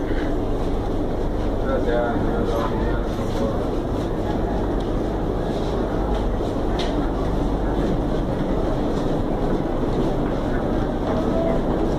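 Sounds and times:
train running and rail noise: 0.0s - 11.9s.

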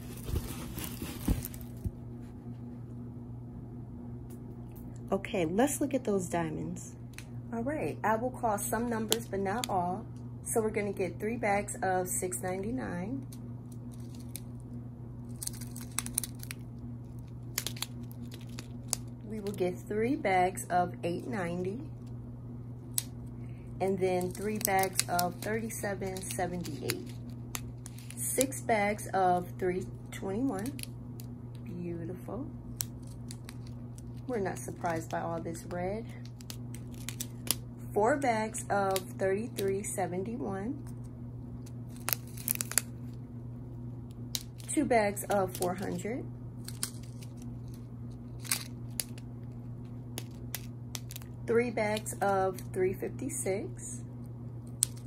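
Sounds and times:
plastic bags crinkling: 0.0s - 1.9s, 13.9s - 14.5s, 15.3s - 19.6s, 24.2s - 28.2s, 36.2s - 37.6s, 41.9s - 42.9s, 46.6s - 49.2s
steady low hum: 0.0s - 55.0s
sharp crackles: 15.3s - 19.2s.

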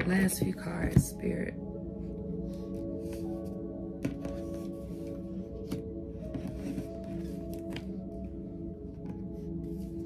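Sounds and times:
ambient music with held tones: 0.0s - 10.0s.

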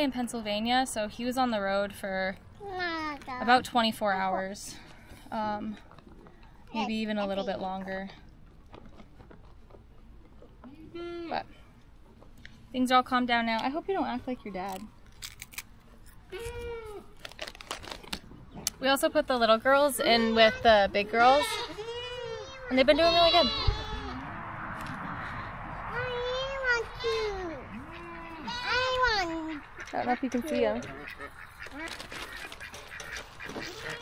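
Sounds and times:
low steady background noise: 0.0s - 34.0s
goat kid bleating: 16.3s - 17.1s, 20.0s - 24.3s, 27.0s - 29.6s, 33.5s - 34.0s.

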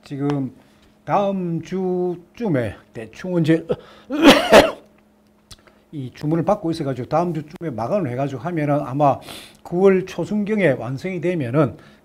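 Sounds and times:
man coughing: 3.7s - 4.8s.

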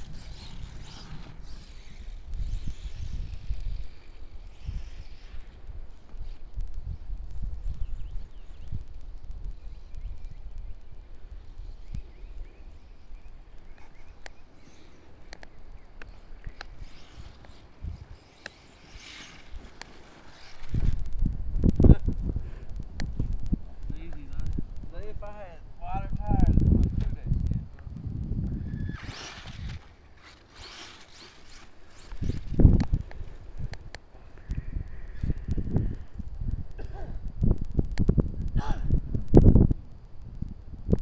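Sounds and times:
wind buffeting microphone: 0.0s - 41.0s
electric toy truck hissing: 28.8s - 32.6s.

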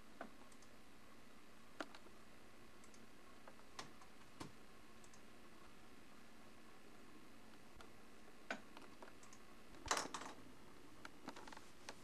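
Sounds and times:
faint steady hiss: 0.0s - 12.0s
sharp clicks: 0.2s - 0.7s, 2.8s - 3.0s, 3.8s - 5.2s, 8.5s - 10.1s.

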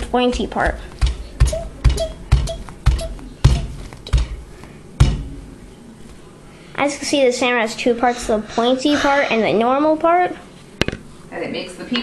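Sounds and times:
mallet pounding dull thuds: 0.0s - 5.4s.

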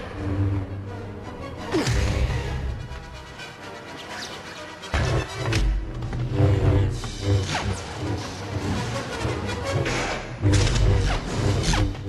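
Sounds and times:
orchestral film score: 0.0s - 12.0s.

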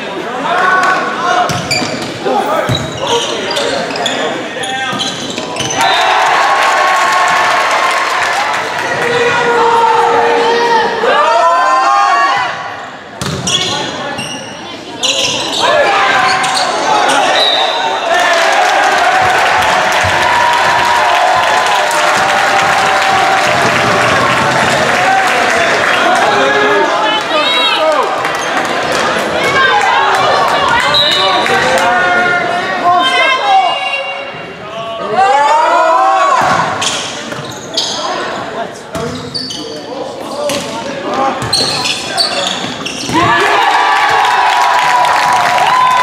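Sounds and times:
crowd shouting and cheering: 0.0s - 37.4s, 39.9s - 46.0s.

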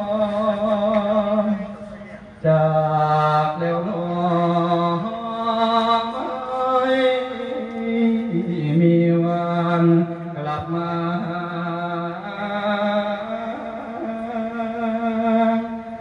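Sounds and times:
man singing long held notes: 0.0s - 16.0s.

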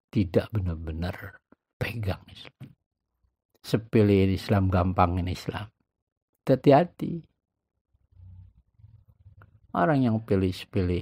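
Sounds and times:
man speaking: 0.1s - 2.8s, 3.6s - 5.8s, 6.4s - 7.3s, 9.7s - 11.0s.

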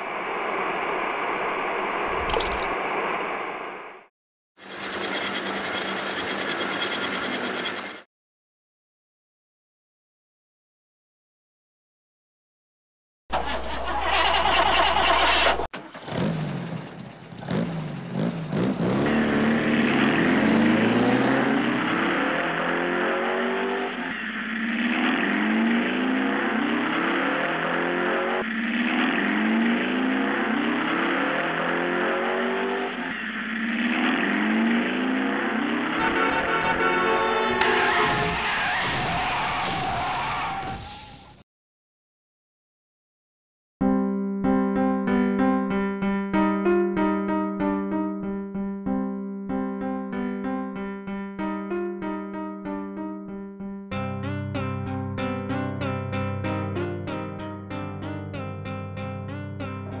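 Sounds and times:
mechanical whirring rattle: 4.6s - 8.0s
car engine accelerating hard: 15.9s - 38.5s.

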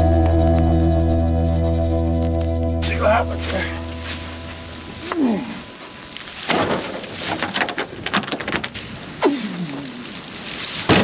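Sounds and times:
dry leaves crunching underfoot: 2.2s - 11.0s
man grunting with effort: 5.0s - 5.7s.

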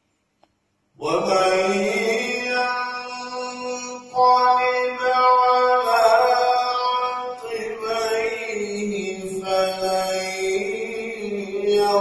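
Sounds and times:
man reciting melodically: 1.0s - 12.0s.

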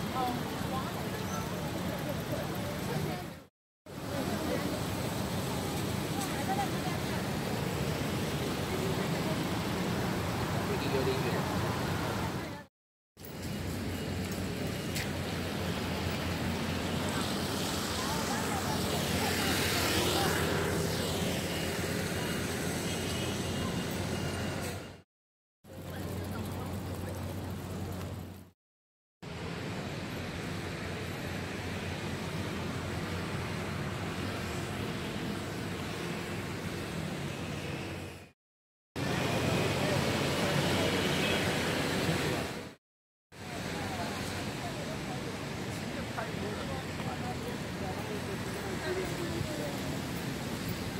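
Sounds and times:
road traffic: 0.0s - 28.6s, 29.2s - 38.4s, 39.0s - 50.9s.

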